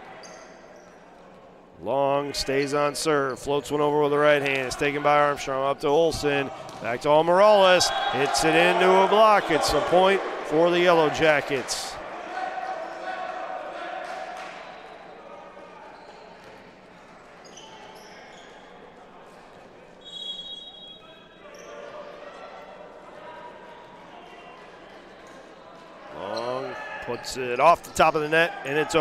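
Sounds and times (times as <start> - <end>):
players calling out in echoing hall: 0.0 - 29.0
referee's whistle: 7.7 - 9.9, 20.0 - 21.7.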